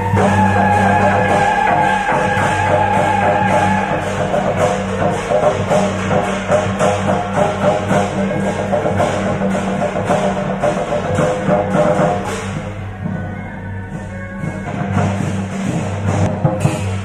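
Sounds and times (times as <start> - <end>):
drums beating steady rhythm: 0.0 - 17.0.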